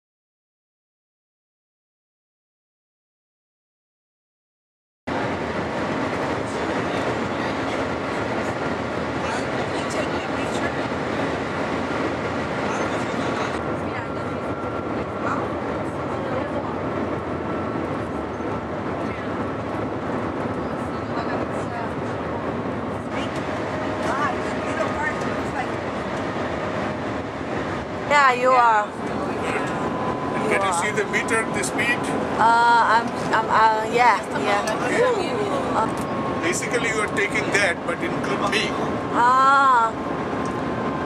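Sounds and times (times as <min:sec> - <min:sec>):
train cabin noise at high speed: 0:05.1 - 0:41.0.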